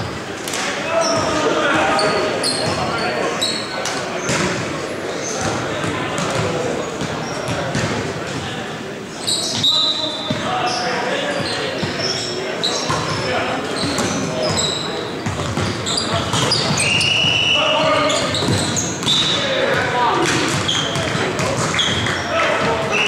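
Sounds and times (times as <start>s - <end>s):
sneakers squeaking: 0.8s - 23.0s
players calling out: 9.1s - 23.0s.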